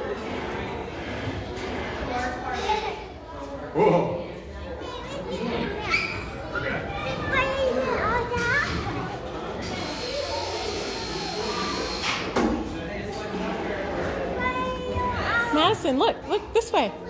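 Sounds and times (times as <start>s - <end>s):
children chattering: 0.0s - 17.0s.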